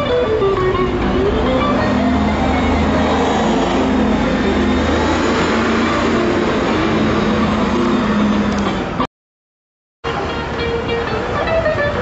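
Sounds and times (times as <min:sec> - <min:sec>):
motor vehicle humming: 0:00.0 - 0:09.1, 0:10.0 - 0:12.0
street noise: 0:00.0 - 0:09.1, 0:10.0 - 0:12.0.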